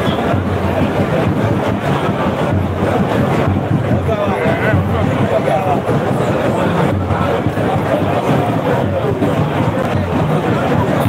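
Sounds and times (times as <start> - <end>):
crowd chatter: 0.0 - 11.0
muffled amplified music: 0.0 - 11.0.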